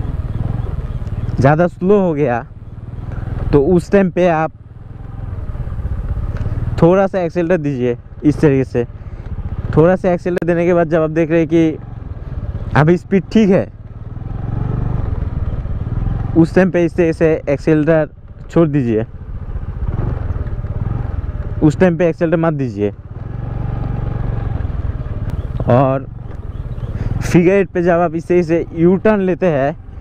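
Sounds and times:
scooter engine running: 0.0s - 30.0s.

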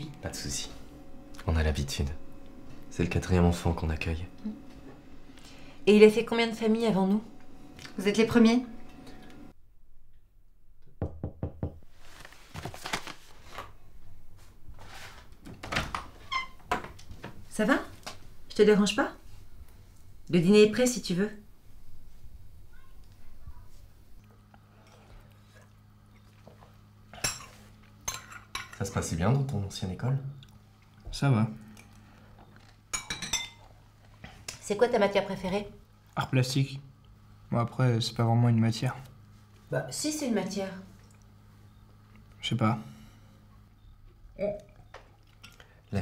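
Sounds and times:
knocks on a door: 11.0s - 11.8s.

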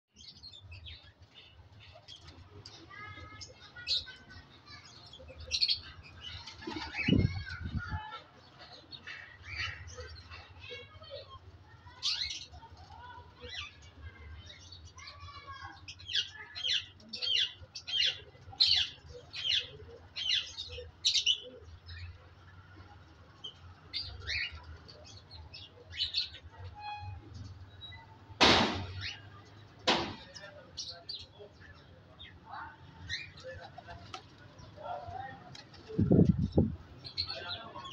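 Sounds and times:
low thud: 28.4s - 29.0s, 29.9s - 30.3s
sharp loud knock: 28.4s - 29.0s, 29.8s - 30.3s.

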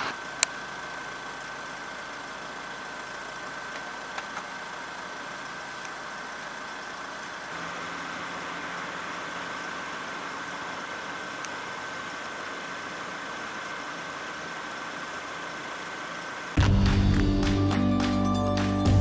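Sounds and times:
vehicle engine idling: 0.0s - 19.0s.

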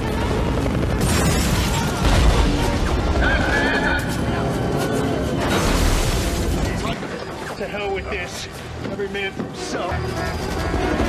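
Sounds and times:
explosion rumble and crashes: 0.0s - 4.3s
dramatic score music: 0.0s - 11.0s.

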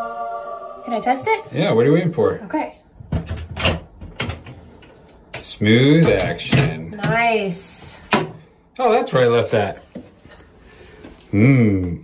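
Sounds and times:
cabinet door knocking open: 3.0s - 4.5s.

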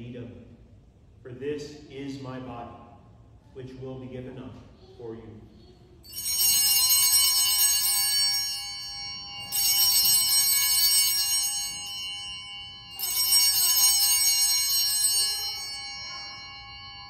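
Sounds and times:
small bells ringing: 6.0s - 17.0s.

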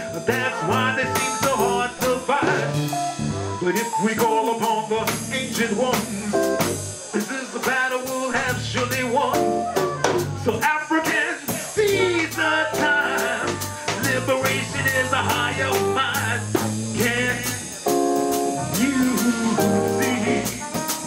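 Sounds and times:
man singing into microphone: 0.0s - 2.9s, 3.6s - 17.8s, 18.6s - 21.0s
low bass notes: 0.0s - 7.1s, 8.3s - 10.7s, 11.8s - 21.0s
steady drum beat: 0.0s - 21.0s.

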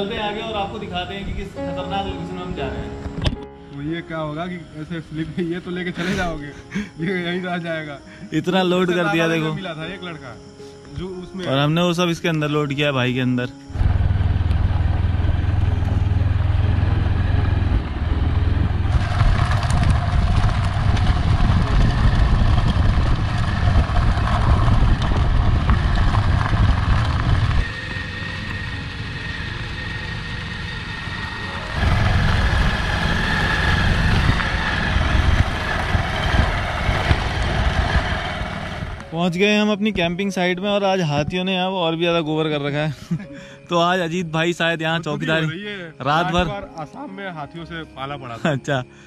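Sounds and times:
motorcycle engine rumble: 13.7s - 39.2s.

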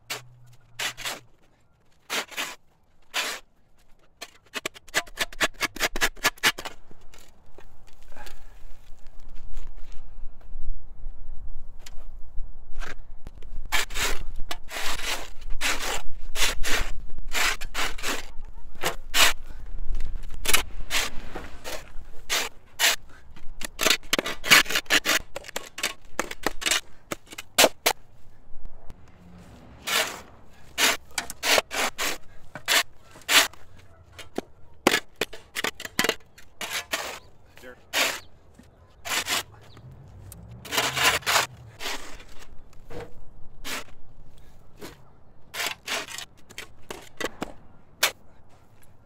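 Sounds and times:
shovel scraping into dirt: 0.0s - 1.4s, 2.0s - 3.5s, 13.7s - 28.0s, 29.3s - 38.3s, 39.0s - 48.2s.

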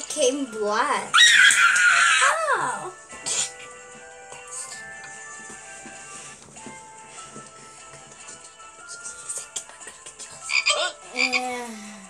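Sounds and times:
soft background music: 0.0s - 12.0s
cartoon frog croaking: 10.5s - 11.5s.

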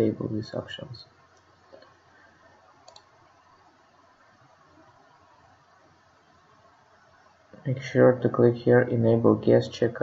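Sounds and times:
computer mouse click: 2.8s - 3.2s.

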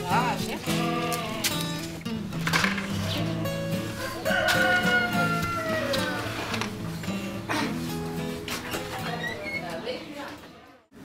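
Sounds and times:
acoustic guitar music: 0.0s - 10.8s
rooster crowing: 4.0s - 6.5s.

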